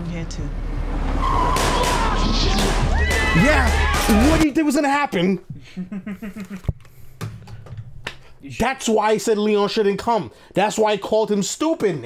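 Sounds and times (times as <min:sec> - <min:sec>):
low engine rumble: 0:00.0 - 0:03.2
car tires squealing: 0:00.9 - 0:04.4.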